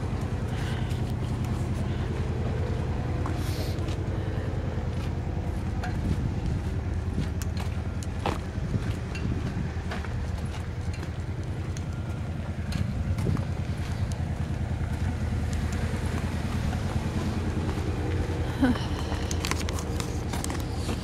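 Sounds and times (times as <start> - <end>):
low engine hum: 0.0 - 21.0.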